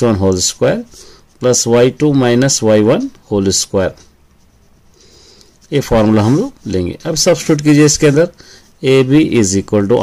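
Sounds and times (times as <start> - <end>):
man speaking: 0.0 - 4.1, 5.7 - 10.0
pen scratching on paper: 0.7 - 4.9, 5.5 - 10.0.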